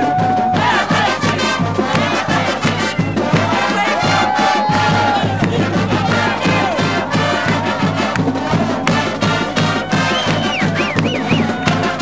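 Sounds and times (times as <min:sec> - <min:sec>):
crowd cheering and shouting: 0:00.0 - 0:12.0
marching band playing: 0:00.0 - 0:12.0.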